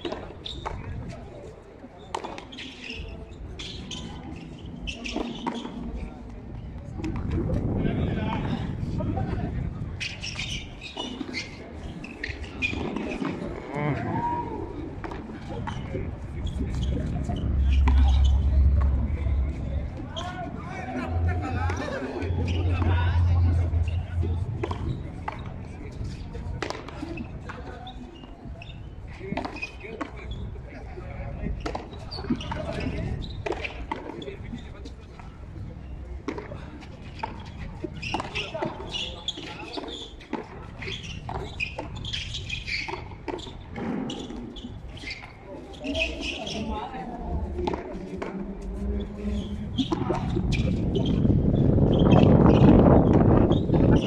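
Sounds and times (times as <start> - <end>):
broad rush of noise: 0.0 - 33.2
voices calling out: 10.0 - 28.1.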